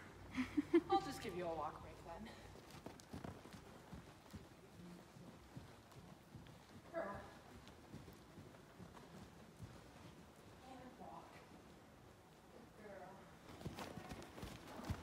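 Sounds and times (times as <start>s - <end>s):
horse hoofbeats on sand: 1.7s - 15.0s.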